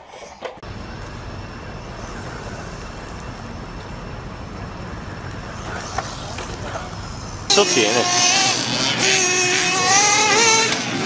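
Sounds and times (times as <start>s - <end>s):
rc car driving over gravel: 0.6s - 11.0s.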